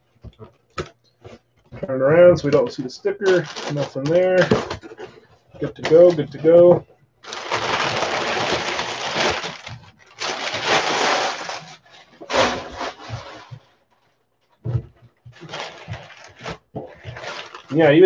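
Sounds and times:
packing paper crackling and rustling: 0:03.2 - 0:04.9, 0:07.2 - 0:14.1, 0:15.3 - 0:18.0.

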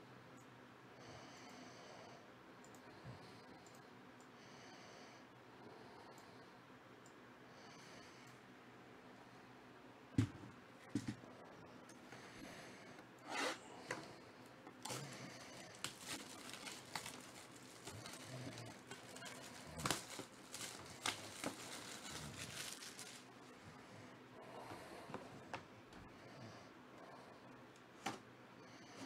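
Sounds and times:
plastic shrink wrap crinkling: 0:14.8 - 0:23.6.

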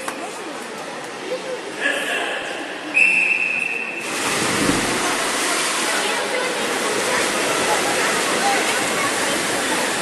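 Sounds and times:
swimmers splashing into pool: 0:03.9 - 0:10.0.

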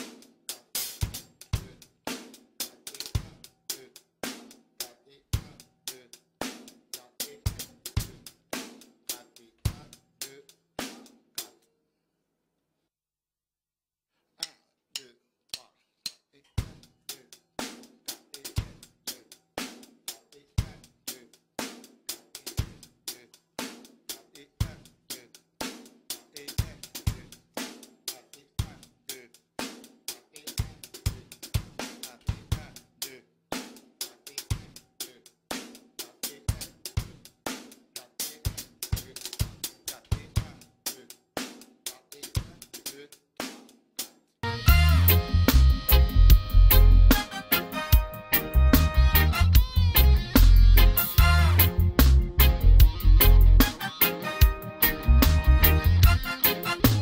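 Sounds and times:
drum kit playing reggae groove: 0:00.0 - 0:11.6, 0:16.6 - 0:57.0.

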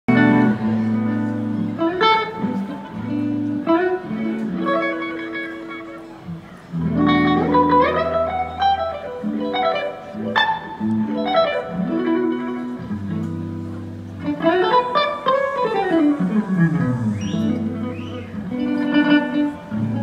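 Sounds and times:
electric guitar solo: 0:00.1 - 0:20.0.

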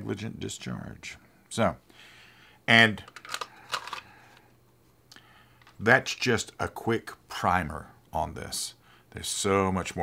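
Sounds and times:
pistol clicks and rattles: 0:03.1 - 0:04.1.

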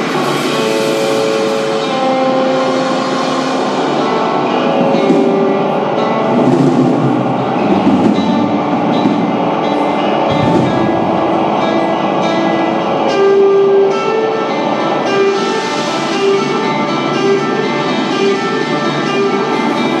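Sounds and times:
psychedelic rock band playing live: 0:00.0 - 0:20.0.

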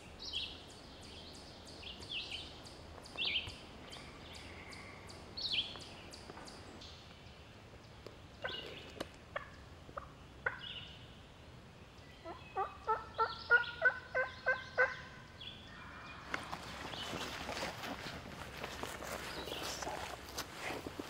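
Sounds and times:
turkey gobbling: 0:08.4 - 0:10.7, 0:12.2 - 0:15.2
crow call caws: 0:15.7 - 0:16.7.

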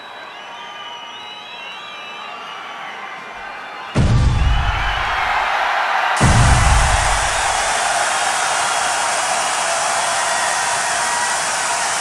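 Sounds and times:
low thump: 0:04.0 - 0:05.4, 0:06.2 - 0:07.7
fire rushing: 0:06.2 - 0:09.5.

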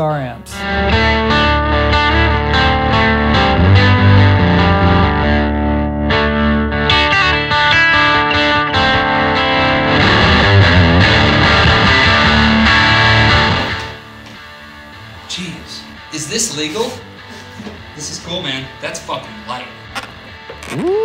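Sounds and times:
overdriven electric guitar music: 0:00.0 - 0:15.2.

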